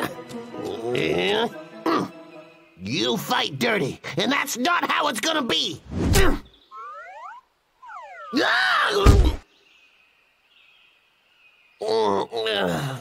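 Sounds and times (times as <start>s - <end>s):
person crying out: 8.3s - 9.4s.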